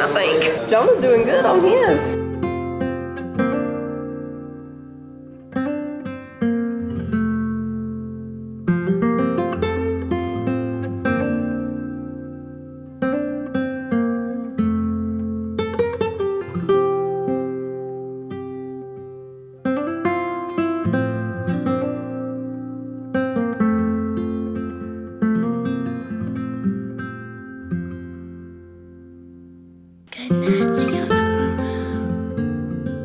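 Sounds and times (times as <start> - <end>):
acoustic guitar strumming: 0.0 - 33.0.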